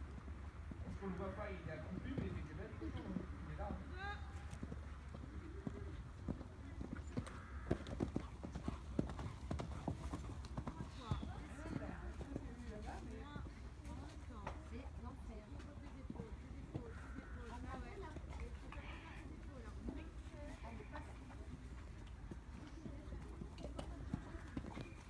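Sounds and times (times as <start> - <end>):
voices murmuring: 0.9 - 7.9, 10.7 - 25.0
horse hoofbeats on sand: 3.7 - 14.8.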